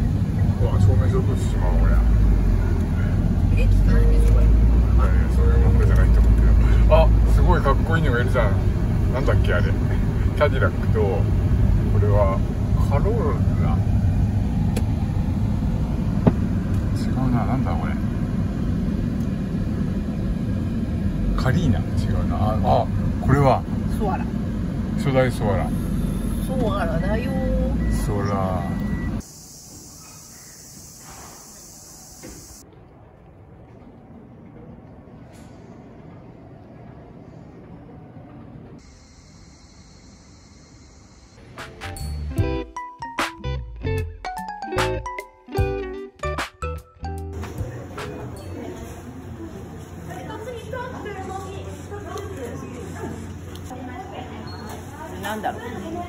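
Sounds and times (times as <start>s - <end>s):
car engine and road rumble: 0.0s - 39.1s
high-pitched insect drone: 29.2s - 32.6s, 38.8s - 41.4s
low hum of indoor hall: 32.6s - 39.1s, 47.4s - 56.0s.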